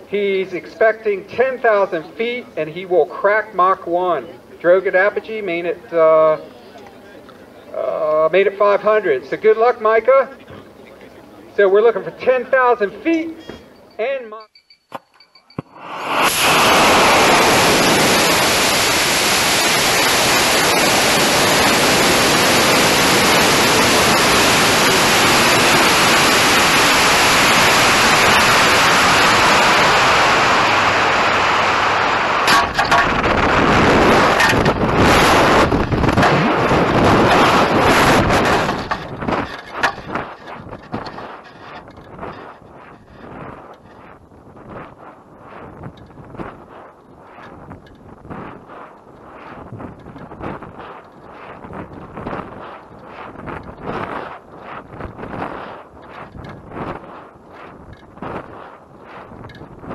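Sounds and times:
gusting wind buffet: 11.4 - 59.9
loud rush of air: 15.7 - 59.9
sharp knocks and clatter: 32.5 - 33.4, 34.2 - 44.1.

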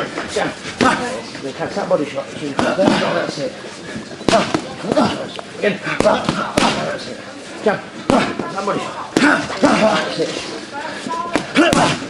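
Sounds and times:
voices talking: 0.0 - 12.0
boxing gloves hitting mitts: 2.6 - 3.2, 4.2 - 5.2, 5.9 - 7.0, 8.1 - 8.6, 11.3 - 12.0.

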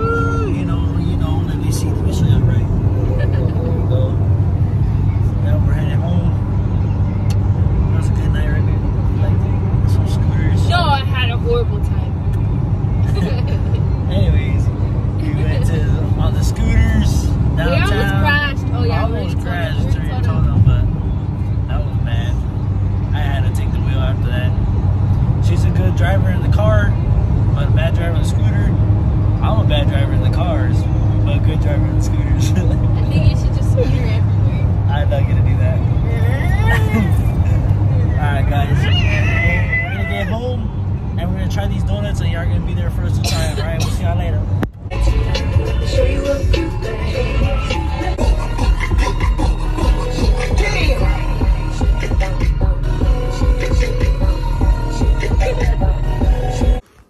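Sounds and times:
people talking and laughing: 0.0 - 6.3, 9.2 - 20.9, 30.2 - 40.6, 41.5 - 44.4
car road and engine rumble: 0.0 - 57.0.

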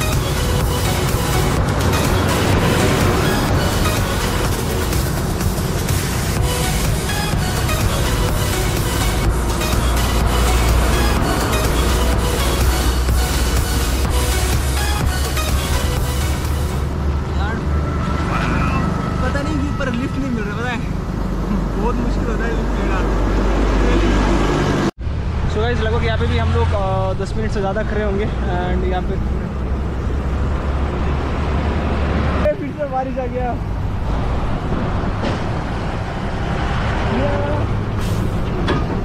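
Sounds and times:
lorry passing close: 0.0 - 27.3
low rumble of road traffic: 0.0 - 39.0
wind: 0.0 - 39.0.

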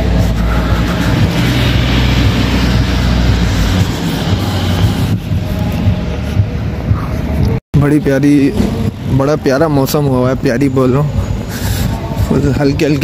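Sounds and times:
passing vehicle engine rumble: 0.0 - 13.0.

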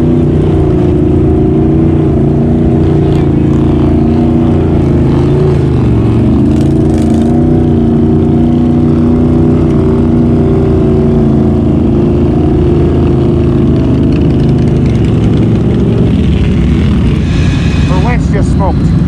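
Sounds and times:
engine running loud: 0.0 - 19.0.

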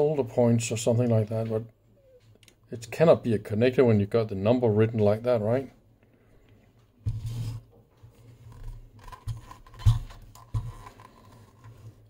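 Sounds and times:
handling rustle: 7.1 - 12.0.

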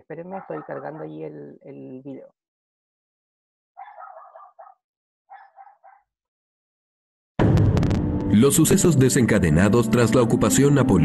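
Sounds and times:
faint dog barking: 0.4 - 1.2, 3.8 - 6.1.

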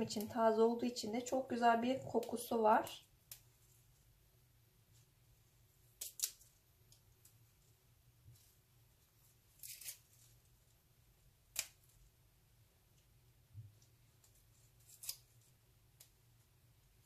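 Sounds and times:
leaves snapping off stems: 6.0 - 6.4, 11.5 - 11.9.

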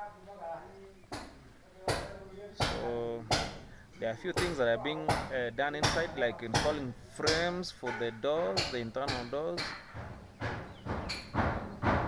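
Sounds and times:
hammer blows: 4.4 - 12.0.

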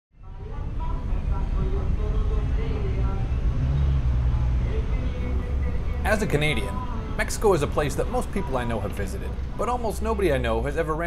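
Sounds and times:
city street traffic: 0.2 - 11.0
car engine idling: 0.4 - 11.0.

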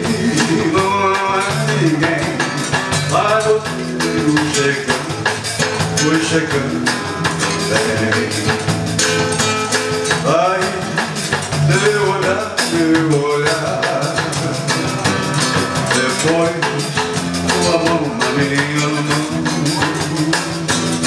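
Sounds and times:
acoustic guitar strumming: 0.0 - 21.0
drum kit rhythm: 0.0 - 21.0
electric bass: 0.0 - 21.0.

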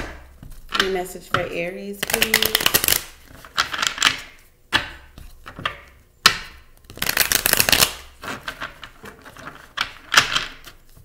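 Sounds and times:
cards being shuffled: 2.0 - 4.3, 6.8 - 11.0.

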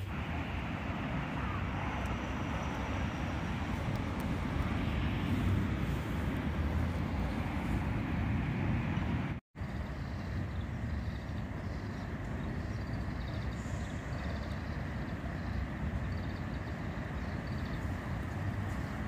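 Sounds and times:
outdoor background rumble: 0.0 - 19.0.

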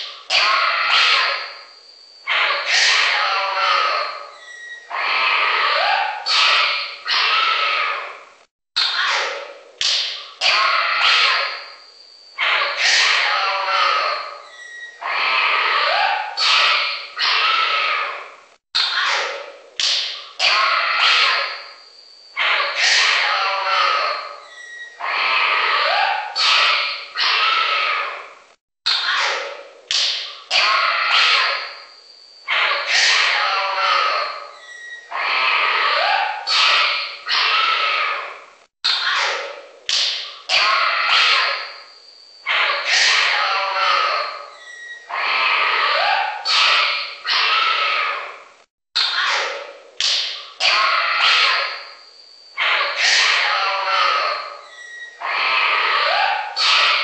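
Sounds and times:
short noisy animal cries: 20.4 - 28.3, 30.5 - 31.9, 32.5 - 39.5, 40.5 - 48.4.

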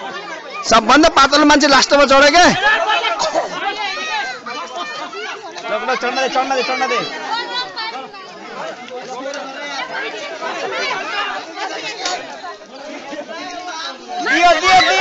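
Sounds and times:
boys and young men chattering: 0.0 - 15.0.

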